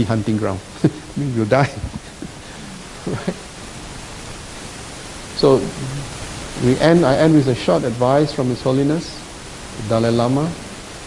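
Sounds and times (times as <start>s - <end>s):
man speaking: 0.0s - 2.0s, 5.4s - 9.2s, 9.8s - 10.6s
background hiss: 0.0s - 11.0s.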